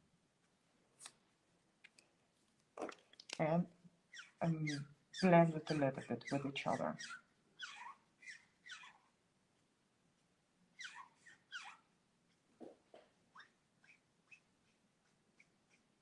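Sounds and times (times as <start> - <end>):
marker nib squeaking on paper: 4.1 - 9.1, 10.8 - 11.9, 13.3 - 16.0.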